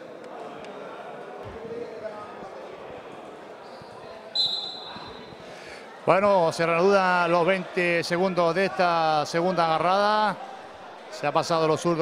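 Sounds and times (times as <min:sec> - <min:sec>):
low crowd murmur: 0:00.0 - 0:12.0
shrill referee's whistle blast: 0:04.4 - 0:05.2.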